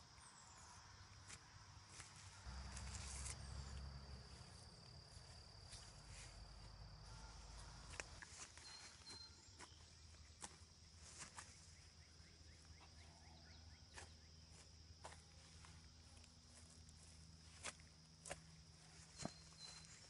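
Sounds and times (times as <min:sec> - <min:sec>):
high-pitched insect buzz: 0:02.5 - 0:09.2.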